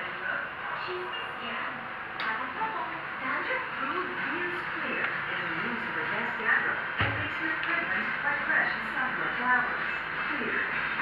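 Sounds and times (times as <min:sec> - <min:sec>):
television voices and music: 0:00.0 - 0:11.0.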